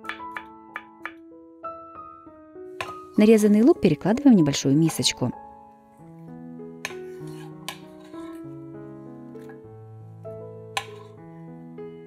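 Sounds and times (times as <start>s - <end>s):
soft background music: 0.0s - 12.0s
knife scraping on wooden board: 6.8s - 8.5s, 10.8s - 11.2s.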